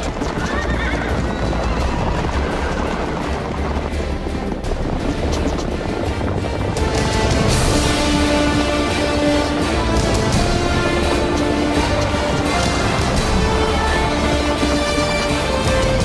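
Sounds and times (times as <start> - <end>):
galloping horse hooves pounding: 0.0 - 16.0
orchestral film score music: 0.0 - 16.0
horse whinnying: 0.3 - 3.1.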